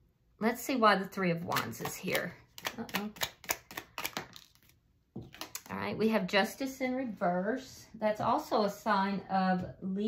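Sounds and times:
card snaps and clicks: 0:01.6 - 0:04.7.

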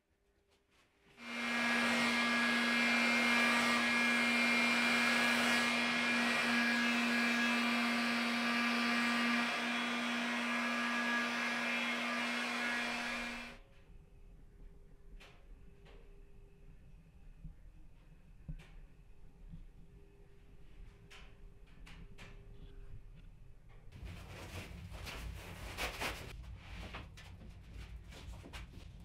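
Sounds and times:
heat gun blowing air: 0:01.2 - 0:13.6.

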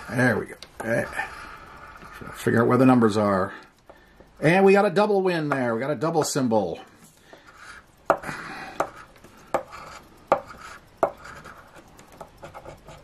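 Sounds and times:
coin scraping scratch card: 0:07.4 - 0:07.9, 0:08.7 - 0:13.0.

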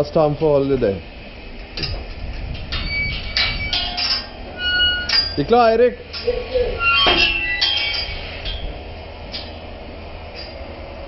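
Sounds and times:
metal rails and gates clanking: 0:02.6 - 0:09.6.

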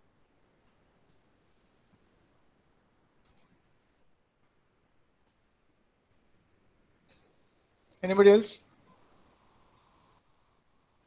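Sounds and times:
quick clicks: 0:03.2 - 0:03.6.

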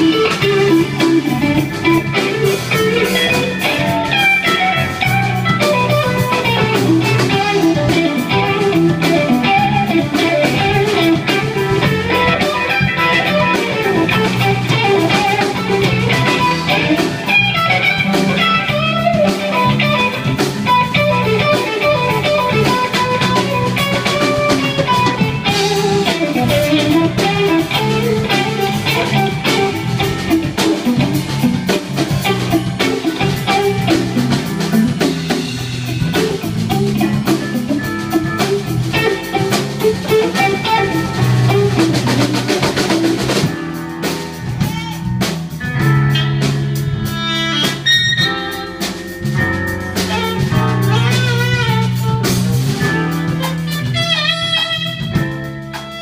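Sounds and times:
blues-rock band playing: 0:00.0 - 0:56.0
electric guitar melody: 0:00.0 - 0:56.0.

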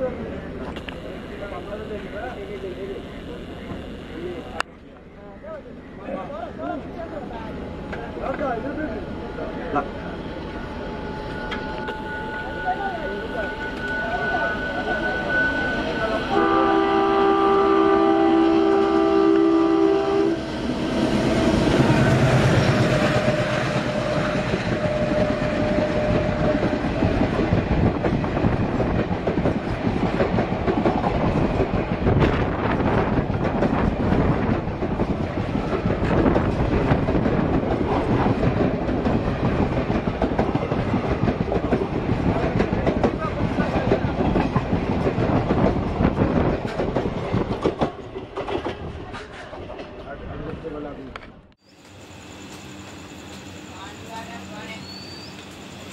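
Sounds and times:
train horn: 0:16.3 - 0:20.5, 0:21.3 - 0:26.8
train wheels clacking on rails: 0:20.6 - 0:50.1.

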